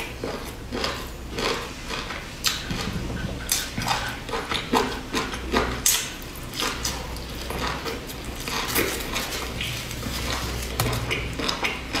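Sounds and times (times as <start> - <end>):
crackly chewing: 0.0 - 12.0.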